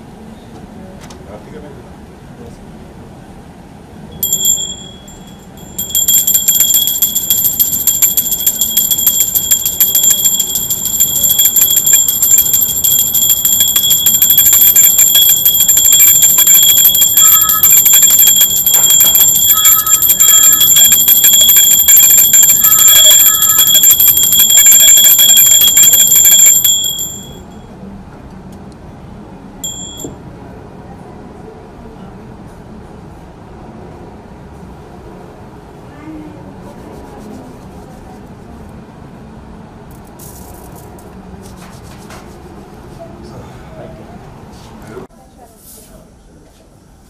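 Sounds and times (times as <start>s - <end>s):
brass hand bell ringing rapidly: 4.2s - 27.4s, 29.6s - 30.1s.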